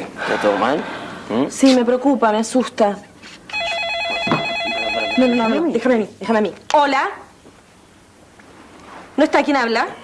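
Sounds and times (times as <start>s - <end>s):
telephone warbling ring: 3.5s - 5.7s.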